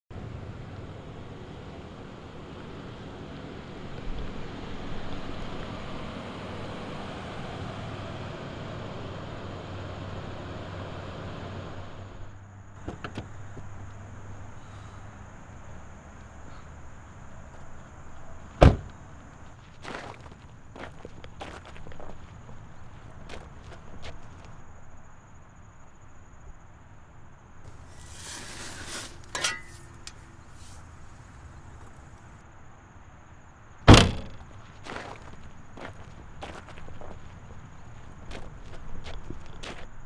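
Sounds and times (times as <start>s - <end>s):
footsteps on dry dirt: 17.1s - 24.9s, 34.3s - 40.0s
car boot lid slamming: 18.6s - 18.9s, 33.9s - 34.4s.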